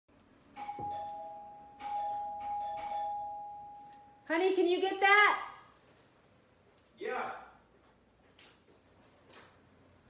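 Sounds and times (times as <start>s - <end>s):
two-tone doorbell chime: 0.6s - 4.3s.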